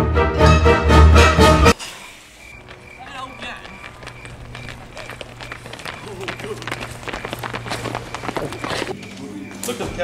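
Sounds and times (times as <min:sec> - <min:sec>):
quick footsteps: 0:02.4 - 0:10.0.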